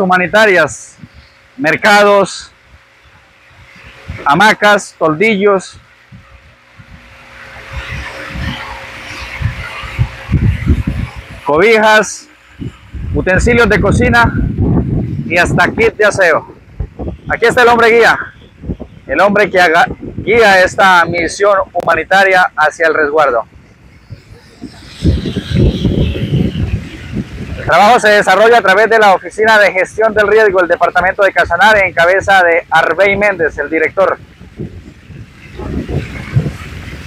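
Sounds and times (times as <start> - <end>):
wind buffeting a microphone: 0.0 - 4.8, 5.4 - 37.0
motorboat engine hum: 0.0 - 37.0
rushing wind and water: 0.0 - 37.0.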